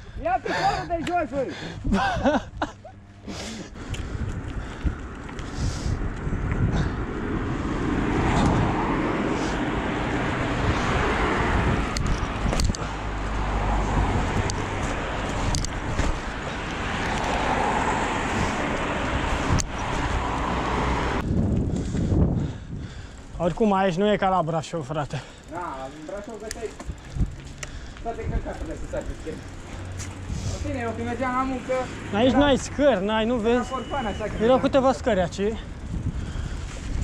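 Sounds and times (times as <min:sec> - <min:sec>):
cars passing: 0:00.0 - 0:37.0
bicycle clicks and knocks: 0:03.9 - 0:06.6, 0:11.8 - 0:13.4, 0:14.4 - 0:17.6, 0:25.2 - 0:30.3.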